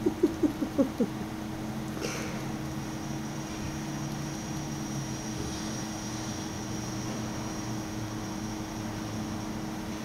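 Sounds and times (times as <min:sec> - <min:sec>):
voice chirping: 0:00.0 - 0:01.2
faint low hum: 0:00.0 - 0:10.0.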